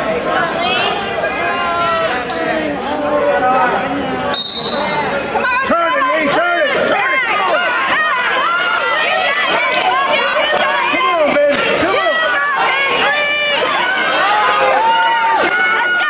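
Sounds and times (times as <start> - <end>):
crowd shouting: 4.3 - 16.0.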